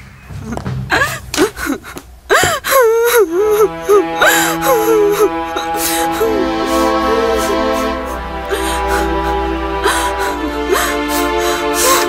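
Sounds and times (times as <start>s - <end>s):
held musical tone: 0.0s - 12.0s
woman crying and wailing: 0.9s - 12.0s.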